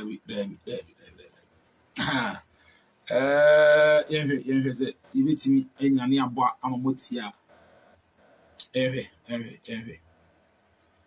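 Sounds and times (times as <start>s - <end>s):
man clearing his throat: 2.0s - 2.5s.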